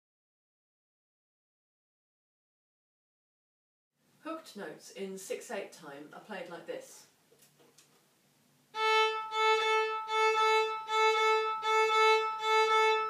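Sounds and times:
violin hooked bow-strokes: 0:08.8 - 0:13.0.

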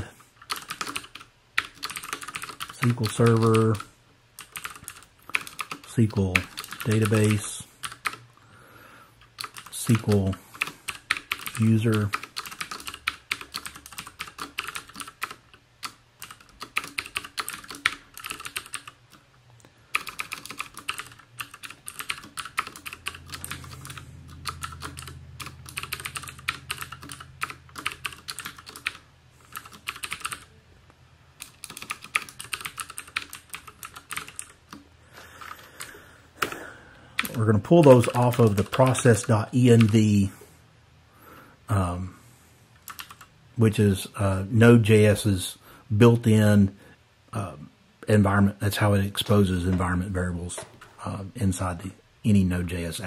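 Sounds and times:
typing on computer keyboard: 0:00.4 - 0:08.2, 0:09.3 - 0:19.2, 0:19.9 - 0:30.5, 0:31.4 - 0:40.0, 0:42.8 - 0:43.3.

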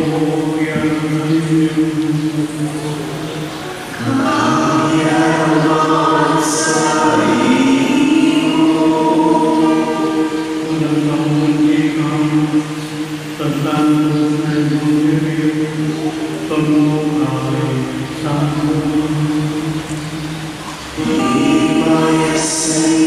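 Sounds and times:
slow sung liturgical chant: 0:00.0 - 0:23.0.

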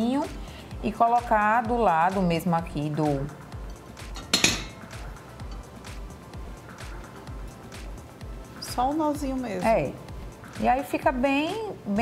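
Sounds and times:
soft background music: 0:00.0 - 0:12.0
tableware clinking: 0:03.6 - 0:05.7.

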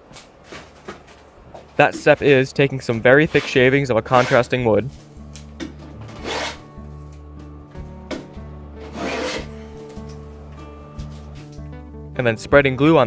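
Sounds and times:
soft background music: 0:01.7 - 0:13.0
hand plane shaving wood: 0:03.2 - 0:04.5, 0:08.8 - 0:09.5.

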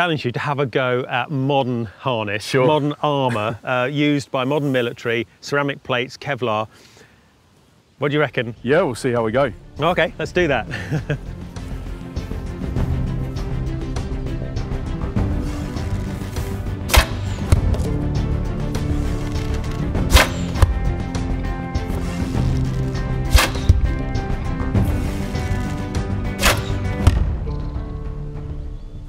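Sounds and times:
background music: 0:08.4 - 0:29.0
arrows thwacking into target: 0:16.9 - 0:18.0, 0:20.1 - 0:20.8, 0:23.2 - 0:23.9, 0:26.3 - 0:27.3.

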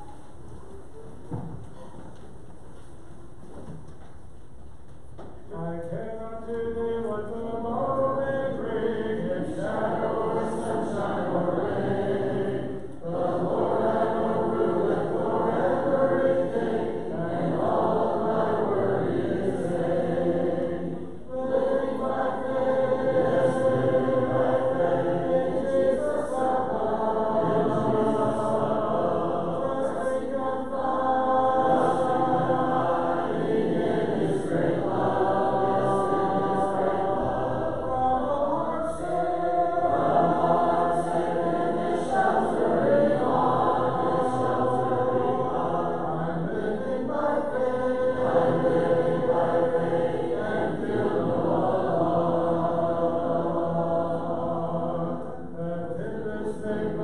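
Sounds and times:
congregation singing a hymn: 0:00.0 - 0:01.6, 0:05.5 - 0:57.0.

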